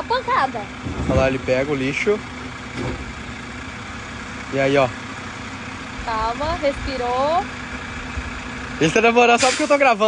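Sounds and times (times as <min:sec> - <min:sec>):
garbage truck engine idling: 0:00.0 - 0:10.0.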